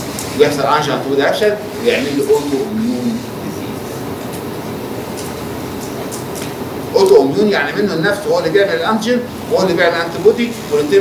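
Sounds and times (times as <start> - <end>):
room hiss and hum: 0.0 - 11.0.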